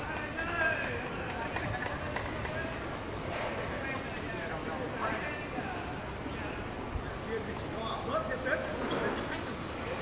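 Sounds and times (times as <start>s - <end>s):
sharp irregular taps: 0.0s - 3.0s
people talking: 0.0s - 10.0s.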